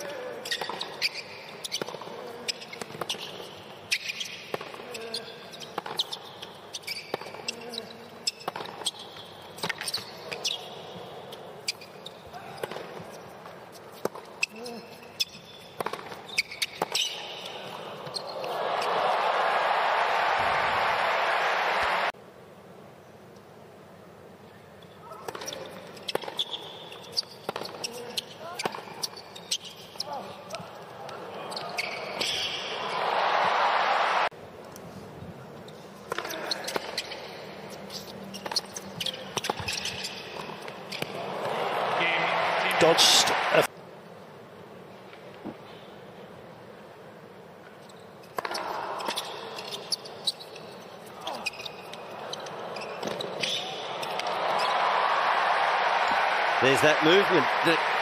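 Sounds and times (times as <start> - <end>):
crowd applause and cheering: 18.4 - 22.2, 32.8 - 34.3, 41.2 - 43.7, 54.0 - 58.0.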